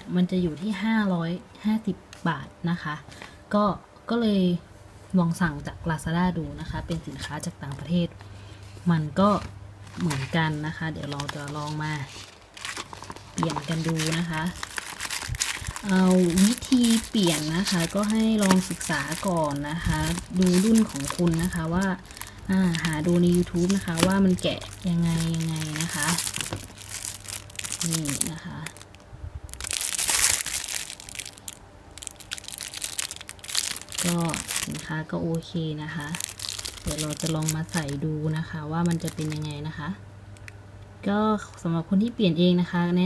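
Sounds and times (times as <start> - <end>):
woman's voice: 0.0 - 8.2, 8.8 - 12.2, 13.4 - 14.6, 15.8 - 26.6, 27.8 - 28.8, 34.0 - 36.2, 36.8 - 40.0, 41.0 - 43.0
plastic air cushion packaging crinkling: 9.2 - 40.6.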